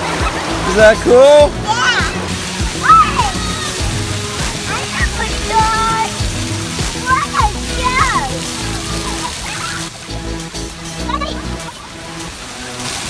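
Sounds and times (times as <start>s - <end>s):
background music: 0.0s - 13.0s
water sloshing and splashing: 0.0s - 13.0s
children calling out: 1.5s - 6.2s, 6.8s - 9.9s.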